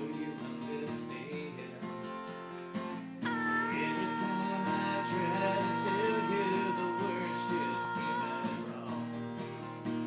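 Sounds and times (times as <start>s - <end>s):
acoustic guitar strumming chords: 0.0s - 10.0s
girl singing long high note: 3.2s - 8.7s.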